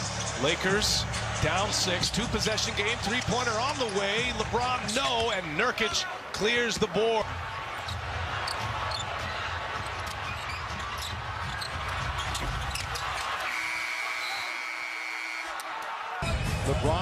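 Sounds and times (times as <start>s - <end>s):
crowd noise: 0.0s - 17.0s
arena horn: 13.4s - 15.6s.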